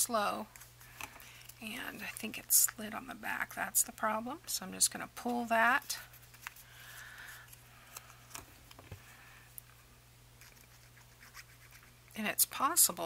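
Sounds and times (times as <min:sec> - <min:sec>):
paper scratching and rustling: 0:10.4 - 0:11.9.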